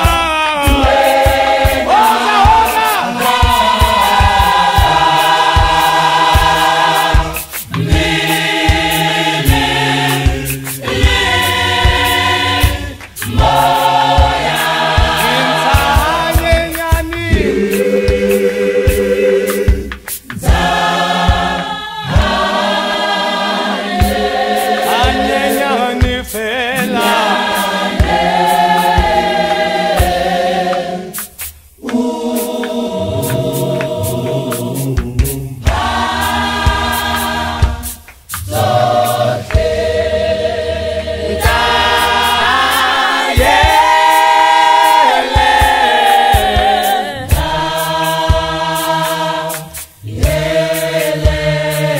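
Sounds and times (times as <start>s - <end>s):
gospel choir singing in harmony: 0.0s - 51.9s
sharp hand claps: 11.8s - 14.3s, 30.7s - 38.6s.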